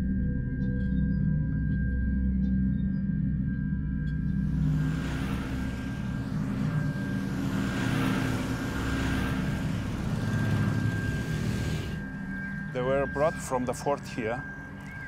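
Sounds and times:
low musical drone: 0:00.0 - 0:15.0
motorcycles riding past: 0:04.3 - 0:12.7.

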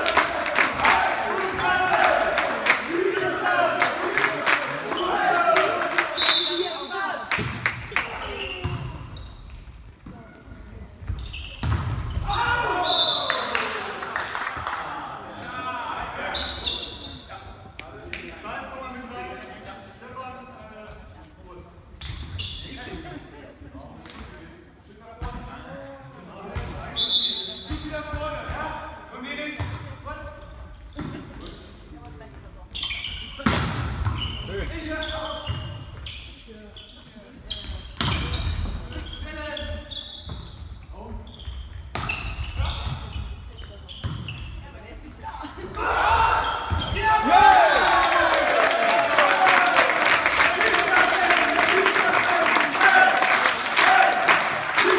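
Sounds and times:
spectators clapping: 0:00.0 - 0:06.6, 0:13.2 - 0:15.1, 0:47.3 - 0:54.9
players calling and shouting: 0:00.0 - 0:09.3, 0:11.0 - 0:19.4, 0:43.9 - 0:54.9.

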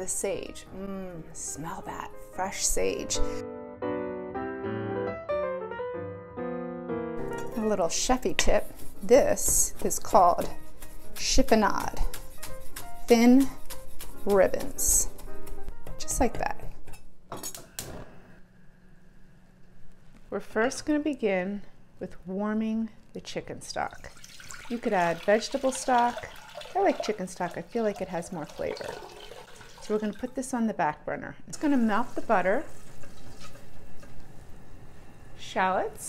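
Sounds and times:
spatula stirring in a pot: 0:07.6 - 0:14.9.

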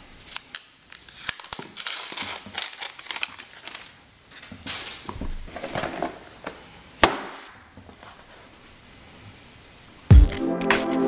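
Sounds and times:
cardboard packaging rustling: 0:00.3 - 0:06.5.

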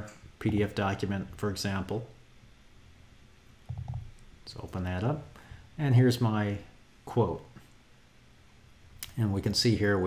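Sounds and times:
faint microphone hum: 0:00.0 - 0:10.0.

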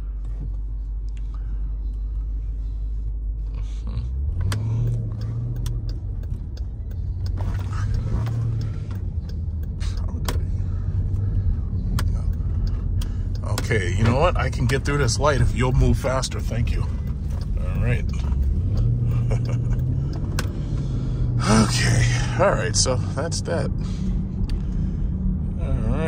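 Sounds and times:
car engine idling and pulling away: 0:00.0 - 0:26.0.

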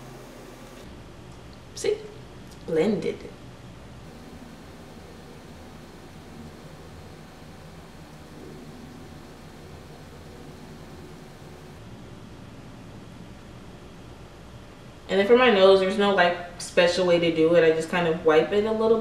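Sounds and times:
faint hum: 0:00.0 - 0:19.0
low room tone hiss: 0:00.0 - 0:19.0.

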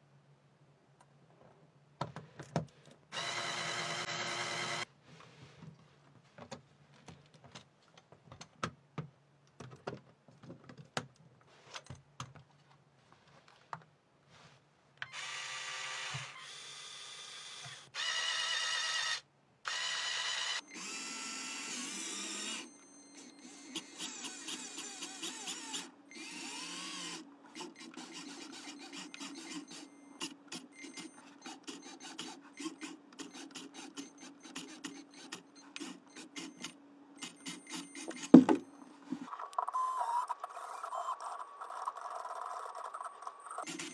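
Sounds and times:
small electric motors whining: 0:03.1 - 0:04.9, 0:15.0 - 0:38.4, 0:39.3 - 0:43.9.

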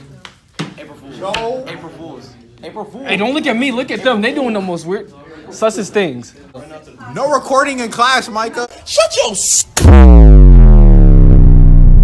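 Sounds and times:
distorted bass synthesizer tone: 0:09.4 - 0:12.0.

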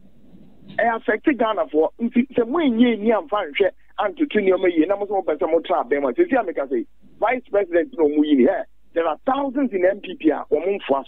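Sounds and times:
person talking: 0:00.7 - 0:11.0.

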